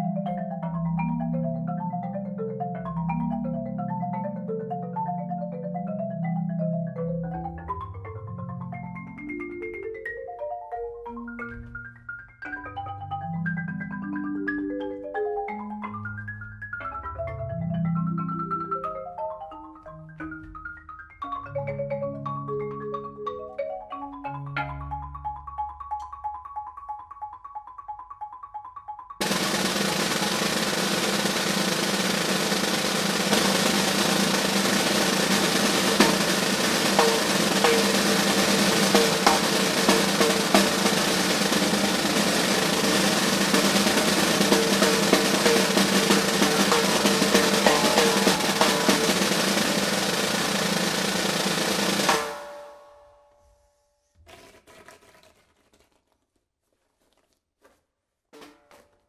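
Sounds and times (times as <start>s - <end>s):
snare drum roll: 29.2s - 53.0s.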